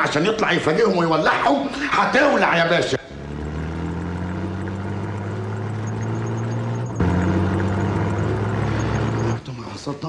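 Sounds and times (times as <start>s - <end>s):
vehicle engine running: 2.9s - 10.0s.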